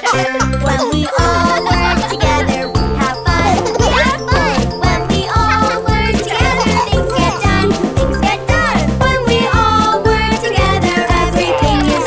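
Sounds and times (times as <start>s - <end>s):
upbeat children's song: 0.0s - 12.0s.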